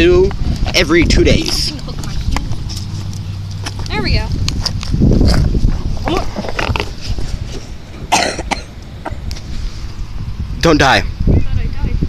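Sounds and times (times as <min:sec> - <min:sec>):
wind rumble on microphone: 0:00.0 - 0:12.0
person coughing: 0:08.1 - 0:08.7.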